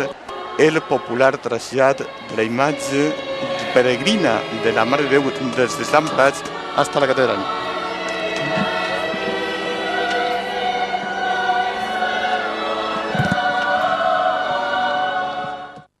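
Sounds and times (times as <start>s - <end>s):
choir singing held chords: 0.0s - 15.9s.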